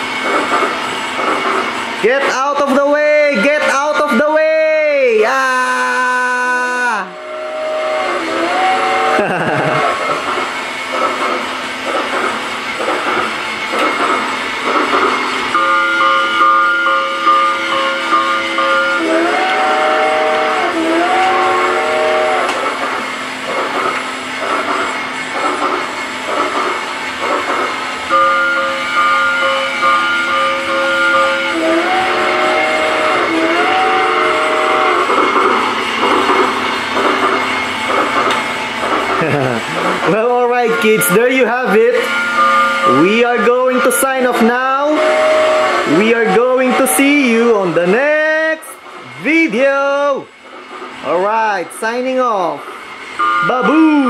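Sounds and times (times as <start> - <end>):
electronic train whistle: 5.5 - 10.2, 15.5 - 22.7, 28.0 - 36.1, 40.5 - 47.7, 53.0 - 54.0
toy train clicking chug: 45.9 - 48.0.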